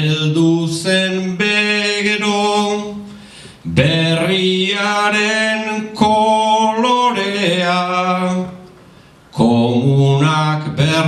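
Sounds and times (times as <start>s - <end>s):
man singing unaccompanied verse: 0.0s - 8.6s, 9.3s - 11.0s.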